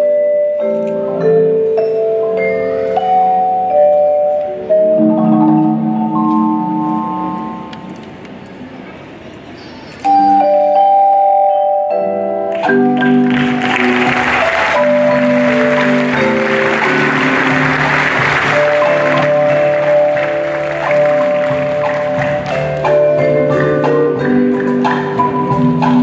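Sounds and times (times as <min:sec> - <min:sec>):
marimbas playing rolled chords: 0:00.0 - 0:08.0, 0:10.0 - 0:26.0
hiss-like percussion wash: 0:12.6 - 0:26.0.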